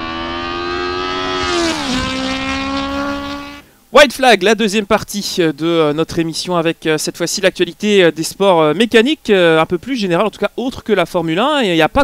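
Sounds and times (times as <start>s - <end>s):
racing car passing at speed: 0.0s - 3.6s.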